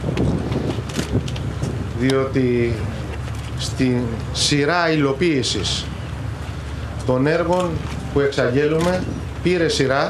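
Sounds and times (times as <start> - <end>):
rumbling noise: 0.0 - 10.0
steady low hum: 0.0 - 10.0.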